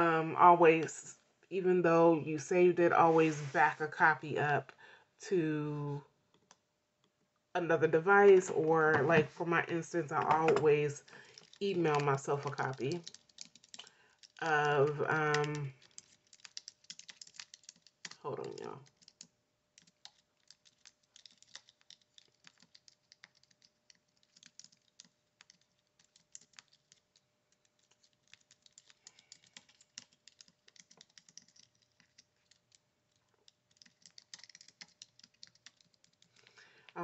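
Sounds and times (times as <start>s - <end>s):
faint keyboard typing: 10.1s - 37.0s.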